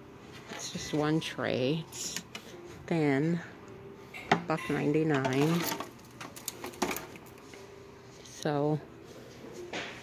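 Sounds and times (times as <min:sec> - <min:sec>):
wicker baskets clicking and rustling: 0:05.2 - 0:07.5.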